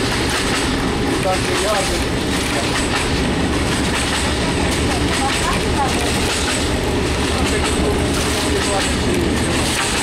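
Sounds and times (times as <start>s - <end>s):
diesel railcar engine rumble: 0.0s - 10.0s
train wheels on track: 0.0s - 10.0s.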